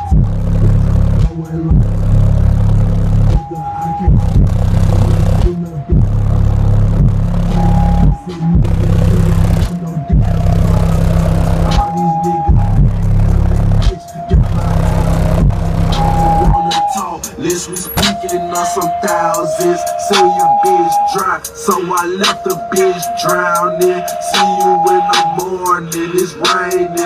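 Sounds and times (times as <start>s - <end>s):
deep hip-hop bass from subwoofers: 0.0s - 27.0s.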